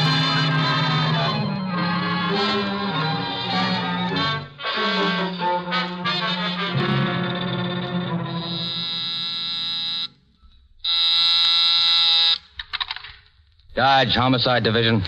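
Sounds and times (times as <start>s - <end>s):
brass orchestral music: 0.0s - 9.2s
telephone ringing: 7.1s - 10.2s.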